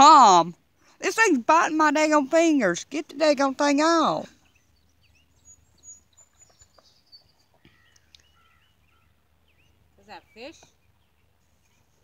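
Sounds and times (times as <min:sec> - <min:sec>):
faint bird chirps: 0:04.3 - 0:12.0.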